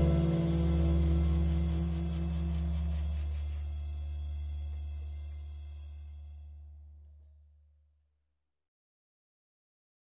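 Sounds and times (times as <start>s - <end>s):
jazz saxophone and double bass: 0.0s - 3.9s.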